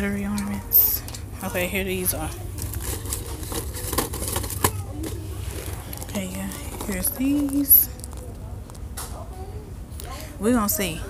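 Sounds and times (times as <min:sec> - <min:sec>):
steady low rumble: 0:00.0 - 0:09.0
plastic tube rustling: 0:02.3 - 0:08.9.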